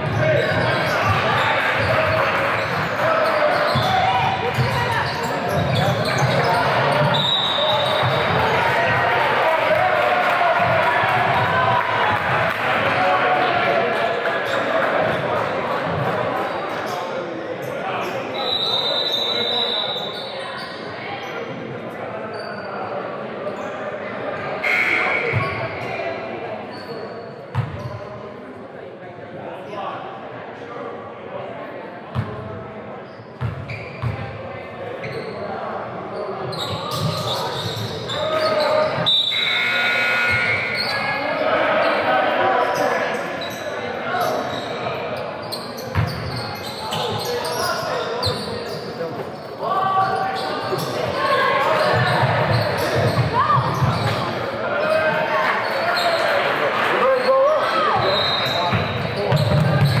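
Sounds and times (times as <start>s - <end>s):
voices echoing in a hall: 0.0s - 60.0s
basketballs bouncing on hardwood: 58.7s - 60.0s.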